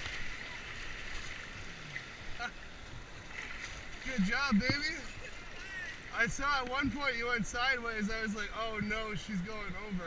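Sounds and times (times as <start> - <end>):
whitewater rushing around a kayak: 0.0 - 10.0.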